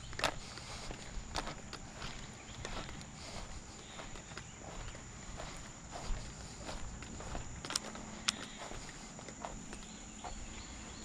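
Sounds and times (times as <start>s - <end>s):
footsteps on grass: 0.0s - 11.0s.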